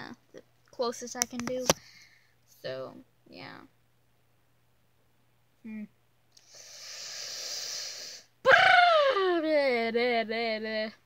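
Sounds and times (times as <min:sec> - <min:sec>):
person exhaling breathily: 0:06.4 - 0:08.3.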